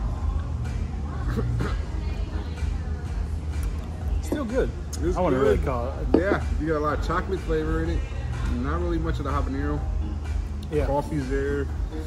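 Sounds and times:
music playing: 0:00.0 - 0:12.0
faint voices: 0:00.2 - 0:08.4.

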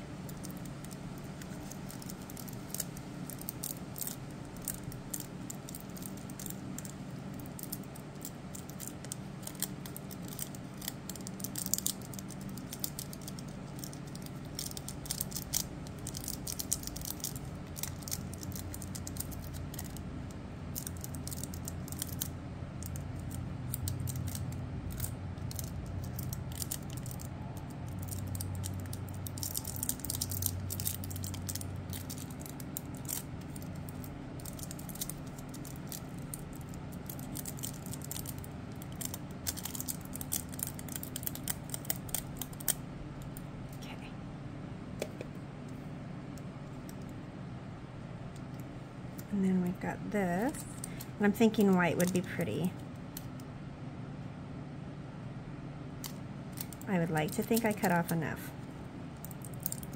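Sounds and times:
steady low hum: 0:00.0 - 0:59.9
foil crinkling and clicks: 0:00.3 - 0:43.4, 0:59.2 - 0:59.9.

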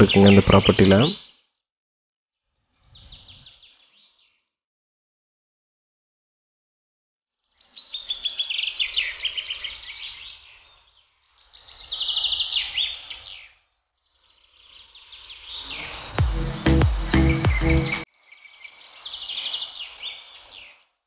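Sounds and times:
songbird chirping: 0:00.0 - 0:01.4, 0:07.5 - 0:20.9
loud music with low beat: 0:16.0 - 0:18.0.

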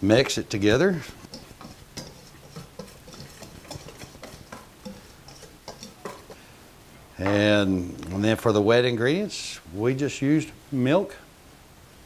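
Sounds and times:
whisk clicking against metal bowl: 0:01.1 - 0:06.4.

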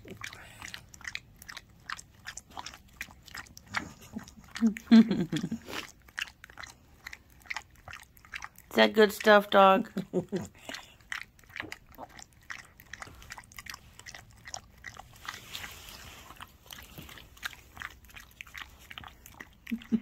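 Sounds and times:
dog licking wetly: 0:00.0 - 0:20.0.

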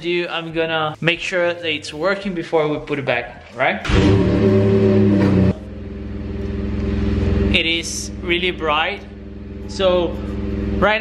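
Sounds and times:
diesel engine idling: 0:03.9 - 0:11.0.

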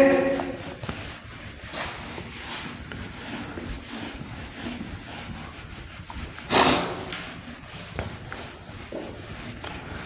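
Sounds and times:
duster rubbing on whiteboard: 0:00.0 - 0:10.0.

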